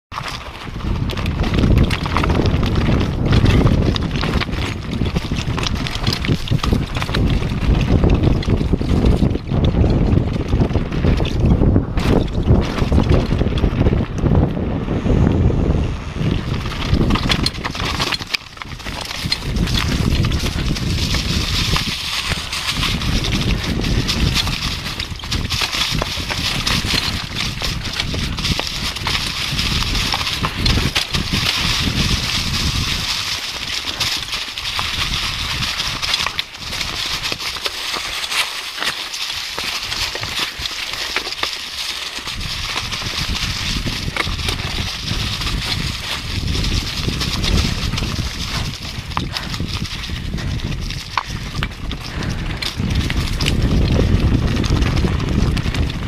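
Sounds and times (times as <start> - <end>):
bike tyres rattling over gravel: 0.1 - 56.0
wind rushing over microphone: 0.1 - 56.0.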